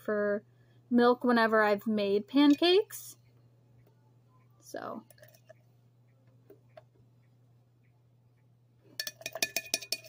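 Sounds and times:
spoon clinking against mug: 0:09.0 - 0:10.0.

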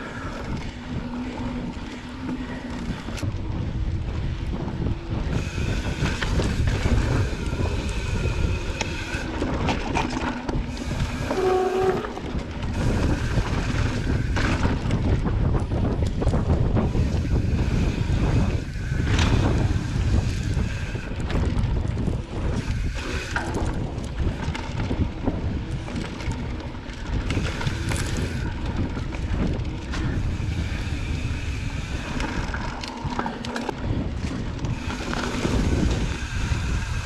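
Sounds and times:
bike tyres rumbling on dirt: 0:00.0 - 0:37.0
wind buffeting microphone: 0:00.0 - 0:37.0.

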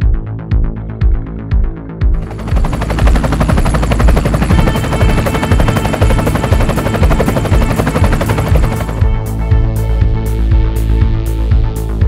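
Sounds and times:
fast rattling pulse: 0:02.2 - 0:09.3
sustained chords: 0:02.2 - 0:11.4.

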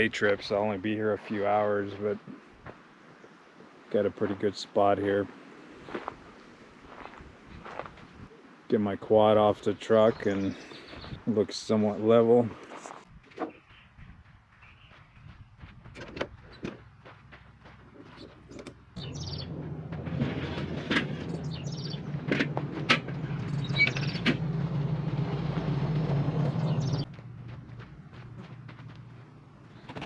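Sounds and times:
birds chirping faintly: 0:08.3 - 0:12.7, 0:13.4 - 0:15.7, 0:16.3 - 0:19.6, 0:21.3 - 0:22.2, 0:26.6 - 0:27.1
metal ramp scraping: 0:19.0 - 0:27.0.

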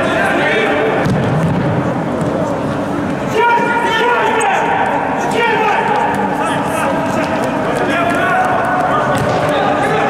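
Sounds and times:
players calling out: 0:02.6 - 0:10.0
running footsteps on court: 0:05.9 - 0:10.0.

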